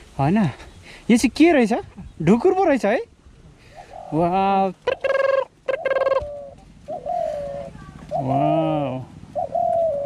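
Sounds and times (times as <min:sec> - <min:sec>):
bird calling: 0:03.6 - 0:10.0.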